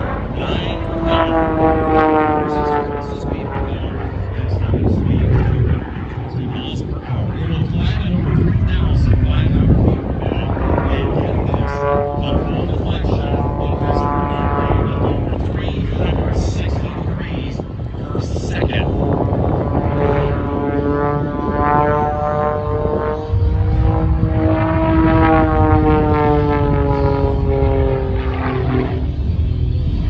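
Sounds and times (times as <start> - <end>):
propeller plane engine: 0.0 - 30.0.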